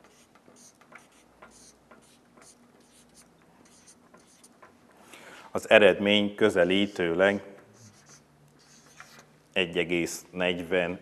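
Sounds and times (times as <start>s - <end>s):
marker pen scratching on whiteboard: 0.0s - 4.8s, 6.6s - 9.3s.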